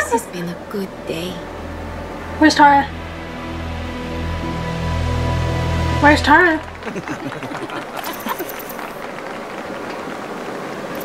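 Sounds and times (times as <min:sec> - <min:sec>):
steady rushing outdoor noise: 0:00.0 - 0:11.0.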